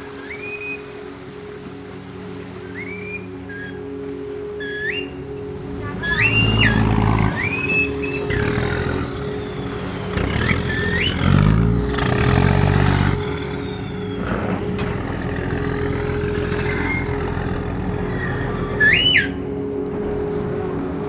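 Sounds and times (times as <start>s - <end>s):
boat engine running: 0.0s - 21.0s
short whistle blast: 18.7s - 19.4s.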